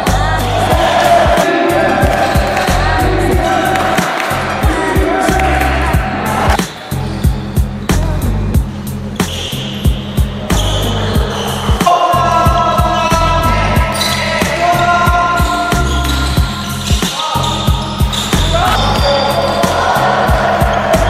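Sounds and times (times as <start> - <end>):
backing music with heavy beat: 0.0 - 21.0.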